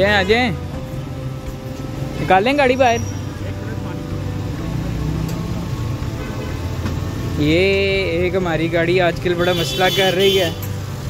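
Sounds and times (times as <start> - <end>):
traffic rumble: 0.0 - 11.0
vehicle engines idling: 0.0 - 11.0
background voices: 3.3 - 8.8.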